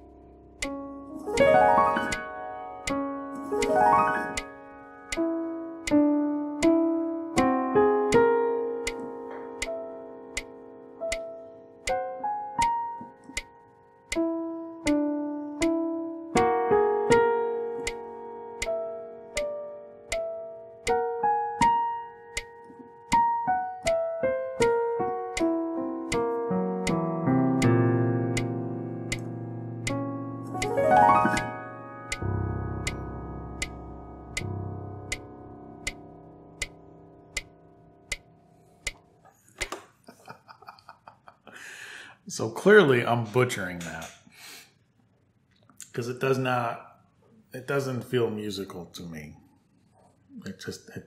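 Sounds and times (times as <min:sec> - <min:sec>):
digital piano notes: 0:00.0 - 0:39.0
metronome clicking: 0:00.6 - 0:39.0.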